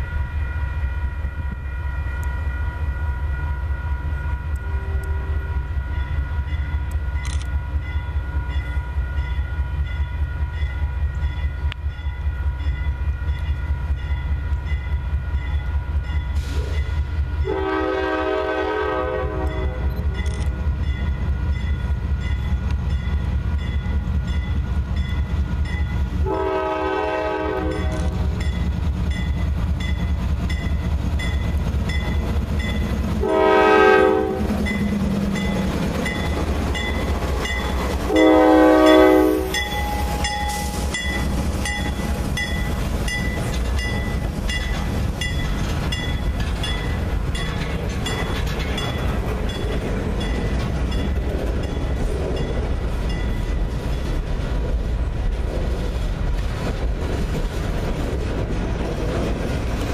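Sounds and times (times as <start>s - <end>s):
diesel locomotive rumbling: 0.0s - 59.9s
train air horn blasts: 0.4s - 6.0s, 17.4s - 20.0s, 26.2s - 28.3s, 33.2s - 34.7s, 38.0s - 40.9s.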